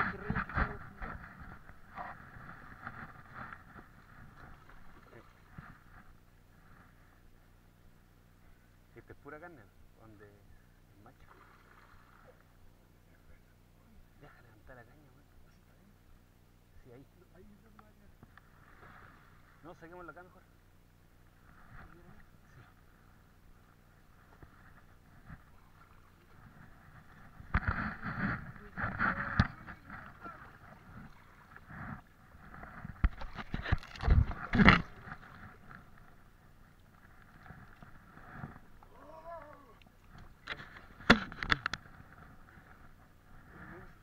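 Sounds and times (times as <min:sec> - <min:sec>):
faint voices: 0:27.9 - 0:32.0, 0:38.4 - 0:39.9.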